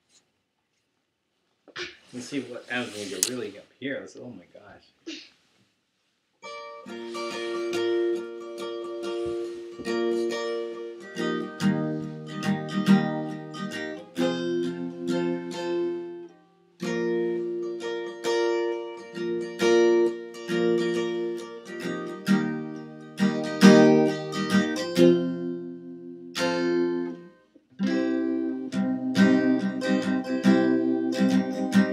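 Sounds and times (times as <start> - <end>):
acoustic guitar strumming chords: 6.4 - 31.9.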